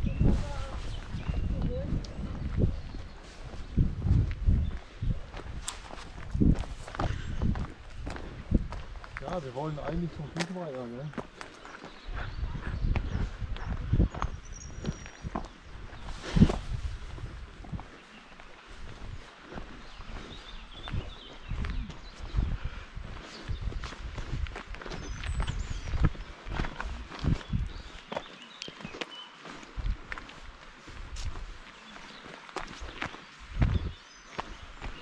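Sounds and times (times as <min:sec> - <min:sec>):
footsteps on dirt path: 0:00.0 - 0:35.0.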